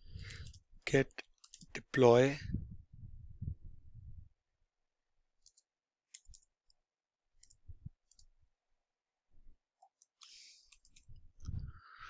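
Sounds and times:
computer keyboard key clicks: 5.4s - 6.5s.

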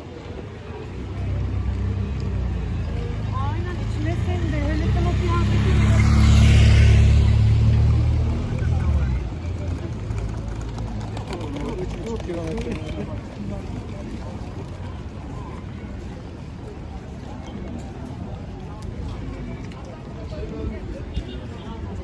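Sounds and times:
passers-by talking: 0.0s - 22.0s
motorcycle passing by: 1.4s - 13.1s.

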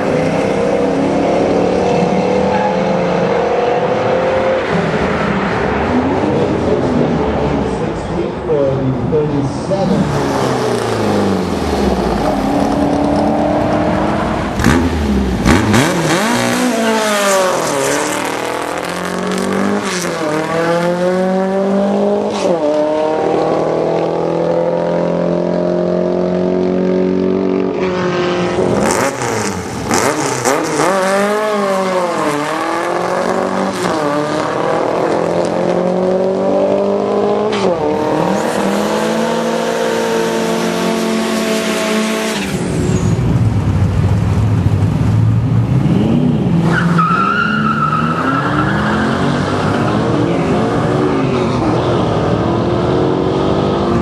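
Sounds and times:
car engines revving and accelerating: 0.0s - 54.0s.

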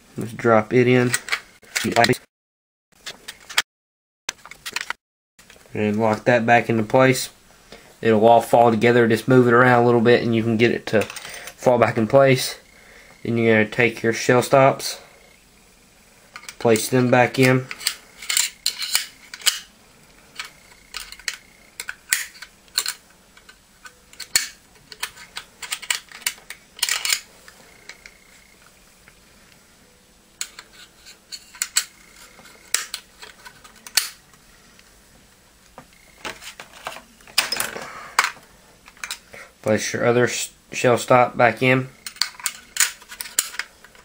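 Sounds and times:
small steel parts clicking: 17.4s - 28.2s, 30.4s - 34.2s, 36.2s - 39.2s, 42.0s - 44.0s.

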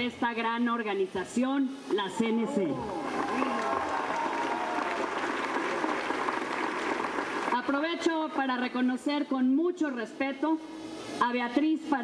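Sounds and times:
voices in crowd: 1.8s - 6.2s
audience applauding: 2.7s - 8.1s.

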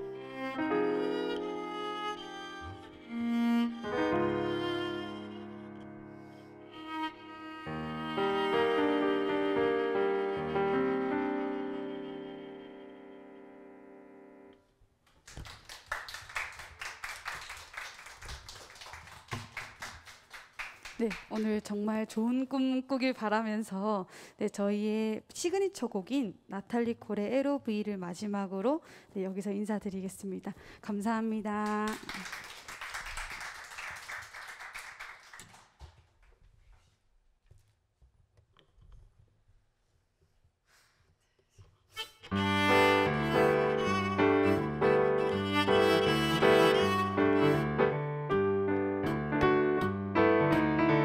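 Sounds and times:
violin and keyboard chord: 0.0s - 14.6s, 42.0s - 51.0s
audience applause: 15.2s - 21.5s, 31.8s - 35.7s.

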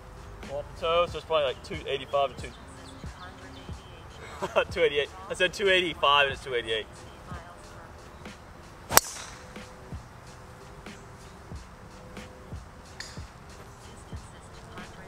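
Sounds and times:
golf driver striking ball: 8.9s - 9.8s, 12.9s - 13.4s.

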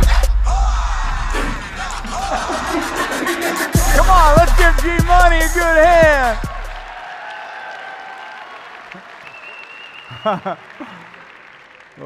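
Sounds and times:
hip hop track: 0.0s - 7.7s
audience applauding and cheering: 1.0s - 12.0s.

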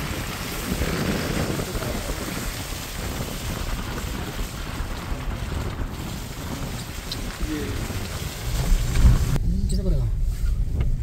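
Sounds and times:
car driving rumble and hiss: 0.0s - 11.0s
wind noise: 0.0s - 11.0s.

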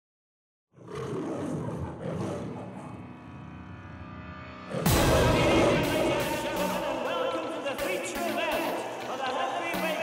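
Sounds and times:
lion roaring: 0.7s - 3.1s.

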